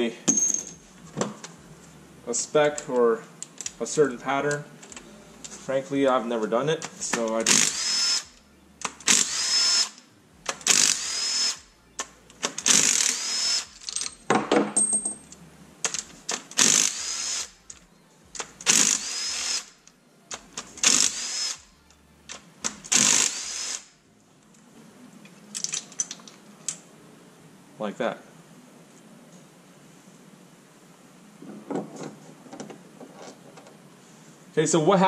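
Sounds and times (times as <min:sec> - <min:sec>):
cordless drill whining: 0:07.4 - 0:08.4, 0:09.0 - 0:10.0, 0:10.6 - 0:11.7, 0:12.6 - 0:13.8, 0:16.6 - 0:17.6, 0:18.6 - 0:19.8, 0:20.8 - 0:21.7, 0:22.9 - 0:23.9
metallic clicks of bolts: 0:25.5 - 0:26.8.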